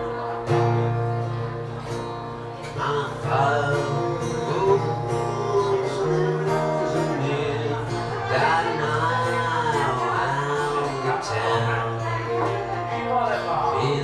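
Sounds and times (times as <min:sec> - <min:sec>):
acoustic guitar strumming: 0:00.0 - 0:14.0
man singing: 0:02.6 - 0:14.0.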